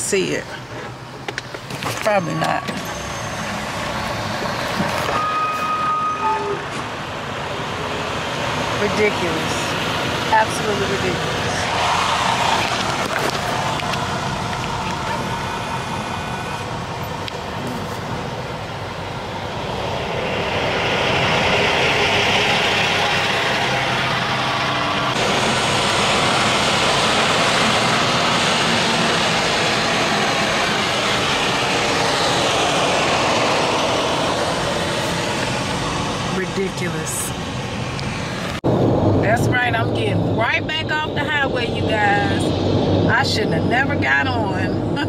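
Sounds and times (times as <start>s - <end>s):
road and traffic noise: 0.0s - 45.0s.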